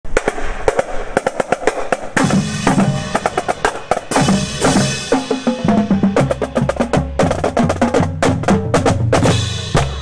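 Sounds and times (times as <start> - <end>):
cymbals: 0.1 - 7.2, 8.4 - 10.0
bass drums: 0.1 - 10.0
snare drum strokes: 0.1 - 10.0.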